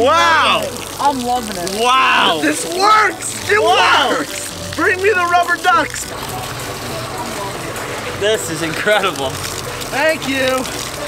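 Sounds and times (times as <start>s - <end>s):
diesel engine idling: 0.0s - 11.0s
water running and splashing: 0.0s - 11.0s.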